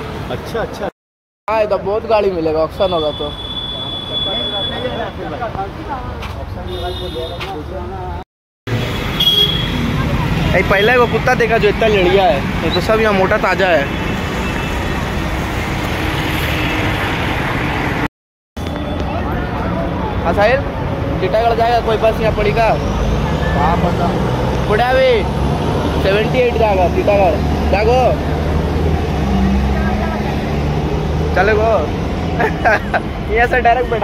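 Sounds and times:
cars and motorbikes passing: 3.8 - 18.1, 18.7 - 34.0.

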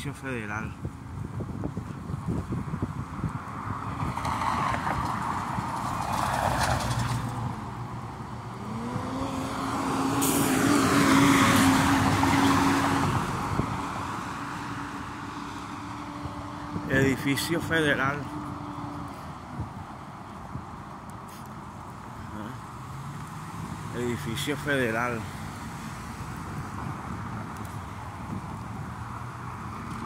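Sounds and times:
car passing: 2.9 - 30.0
vehicle engine hum passing: 3.3 - 30.0.

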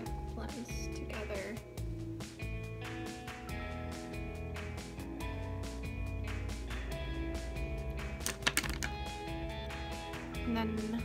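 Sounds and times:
background music: 0.0 - 11.0
makeup products clicking and tapping: 8.2 - 9.1.

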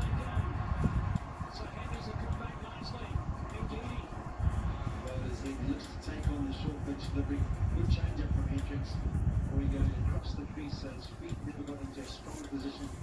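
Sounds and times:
commentator speaking: 0.0 - 13.0
music from tv: 0.0 - 13.0
stadium crowd noise: 0.0 - 13.0.

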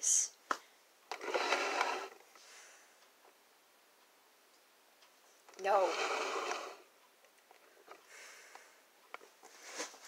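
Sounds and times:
girl speaking: 0.0 - 0.4.

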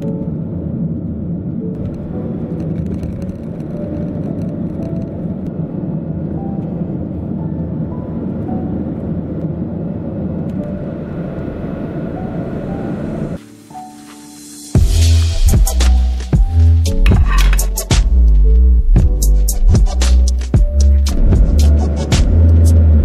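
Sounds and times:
car engine and road rumble: 0.0 - 23.0
quiet background music: 0.0 - 23.0.

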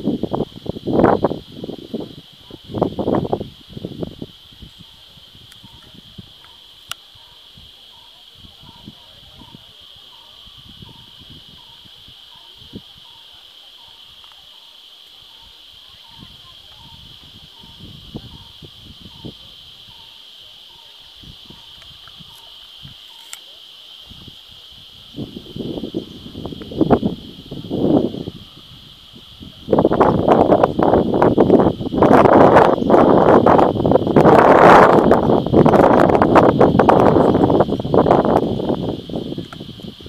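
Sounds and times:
wind buffeting microphone: 0.0 - 14.2, 15.1 - 23.1, 24.0 - 40.0
high-pitched insect drone: 0.0 - 40.0.

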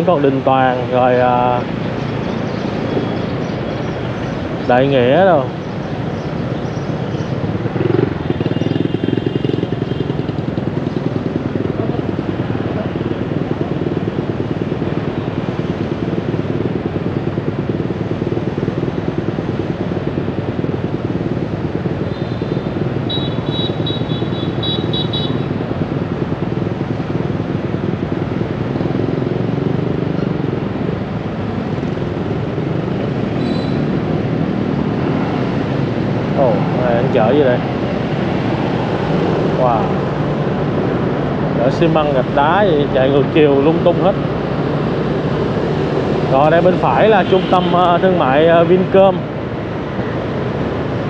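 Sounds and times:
motorbike engines idling: 0.0 - 51.0.

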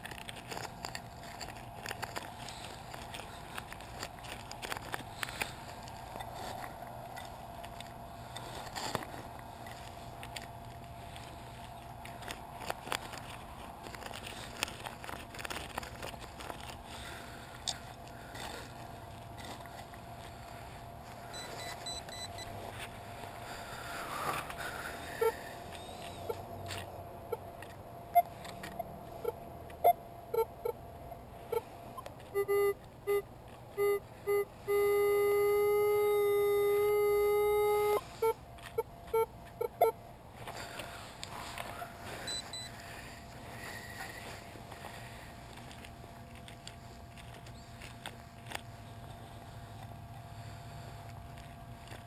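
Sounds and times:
knife scraping in rubber mulch: 0.0 - 26.9, 40.4 - 52.0
metal detector beeping: 19.4 - 23.6, 24.4 - 26.4, 28.1 - 30.8, 31.4 - 40.0, 42.0 - 45.3.

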